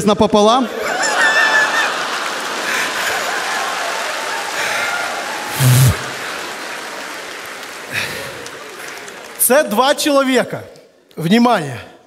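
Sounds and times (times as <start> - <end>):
audience laughing: 0.6 - 9.2
audience applauding: 0.8 - 10.3.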